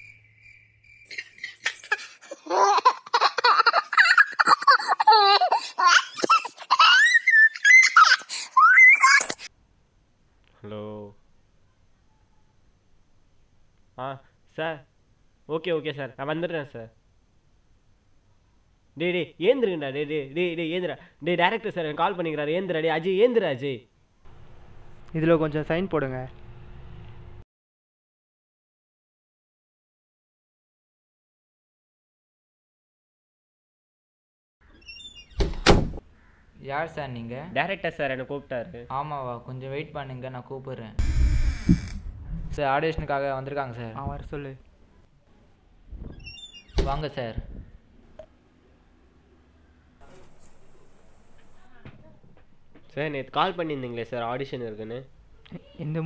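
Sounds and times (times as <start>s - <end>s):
door squeak: 34.6s - 36.0s, 41.0s - 42.1s, 46.0s - 47.0s.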